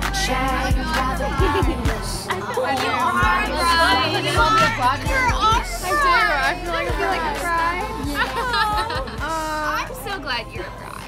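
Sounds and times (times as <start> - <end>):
music with thumping beat: 0.0 - 3.5, 4.4 - 10.8
women's excited voices: 0.4 - 10.9
women laughing: 0.6 - 10.8.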